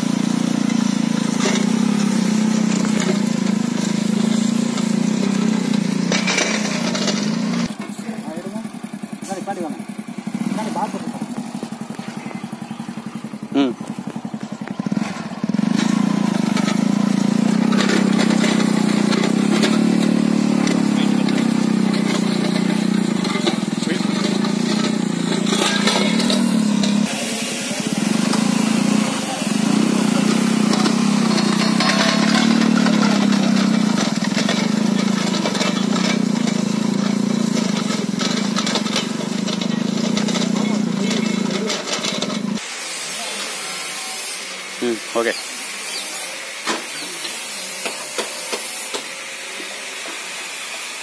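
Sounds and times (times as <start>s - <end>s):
motorcycle engine under load: 0.0s - 51.0s
blade dragging through earth: 0.7s - 7.8s, 14.8s - 36.7s.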